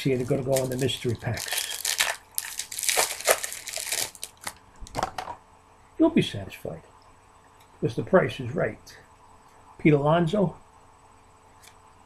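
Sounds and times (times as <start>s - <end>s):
wrapper crinkling: 0.0s - 4.6s.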